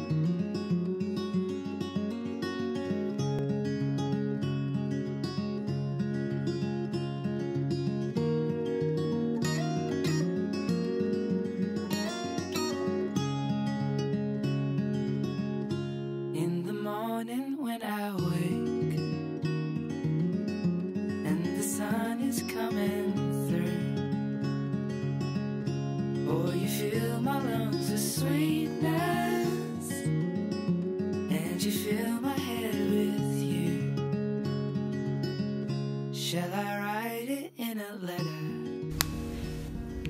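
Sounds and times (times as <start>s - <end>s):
acoustic guitar picking: 0.0s - 17.2s, 18.2s - 37.2s, 38.2s - 40.0s
swooping gliding sound: 38.9s - 40.0s.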